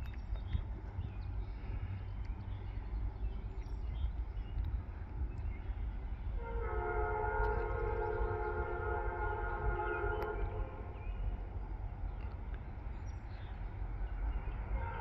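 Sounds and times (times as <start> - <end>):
steady low rumble: 0.0 - 15.0
locomotive air horn blast: 6.4 - 11.0.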